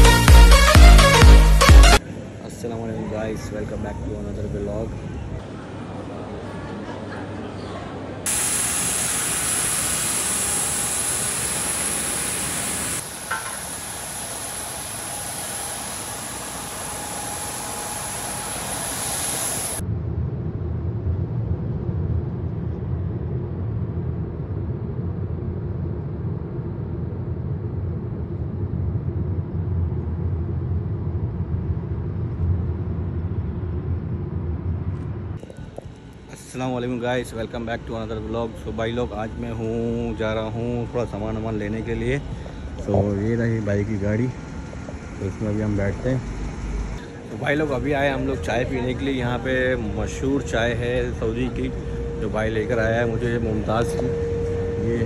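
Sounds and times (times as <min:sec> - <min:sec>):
airliner cabin hiss and whine: 0:08.1 - 0:19.8, 0:26.0 - 0:55.0.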